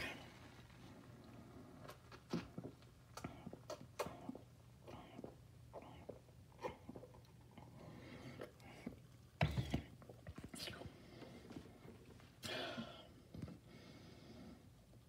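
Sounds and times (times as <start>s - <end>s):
person sipping and gulping: 0.0s - 13.6s.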